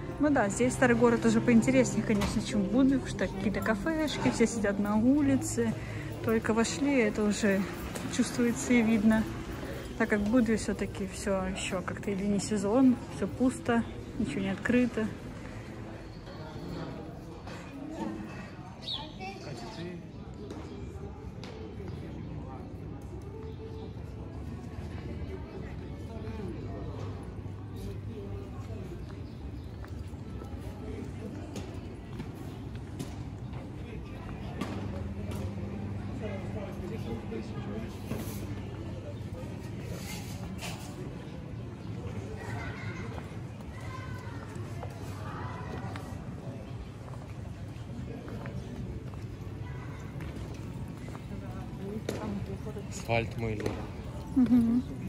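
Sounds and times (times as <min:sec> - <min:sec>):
music: 0:00.0 - 0:04.5
chatter of people: 0:00.0 - 0:55.0
faint background voices: 0:00.0 - 0:55.0
footsteps on stone paving: 0:27.0 - 0:36.1.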